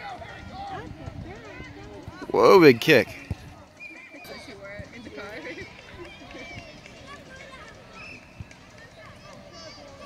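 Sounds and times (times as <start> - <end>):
distant calls and chatter: 0.0 - 10.0.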